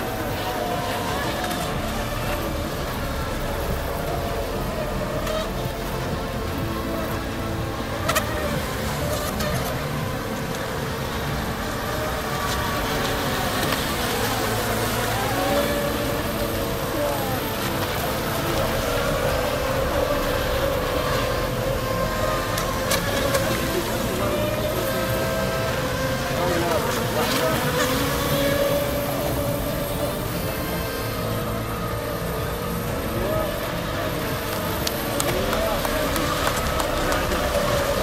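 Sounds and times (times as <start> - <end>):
people talking: 0.0 - 38.0
racing boat motors: 0.0 - 38.0.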